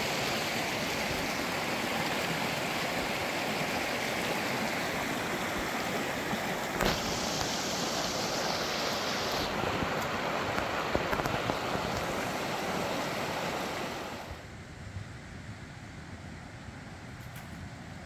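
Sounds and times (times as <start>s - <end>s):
creek rushing over stones: 0.0s - 14.4s.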